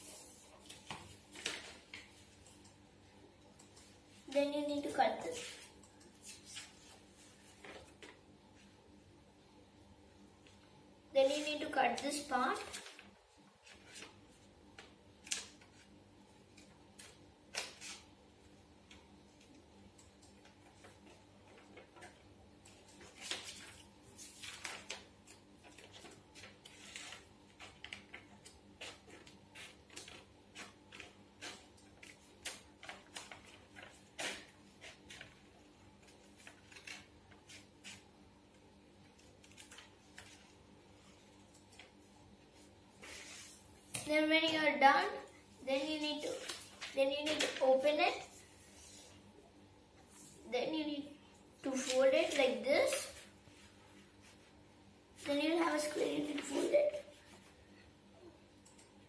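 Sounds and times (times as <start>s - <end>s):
paper rustling: 0.0s - 2.7s, 20.7s - 38.1s, 39.1s - 40.6s, 46.0s - 49.2s
scissors snipping paper: 24.4s - 38.1s.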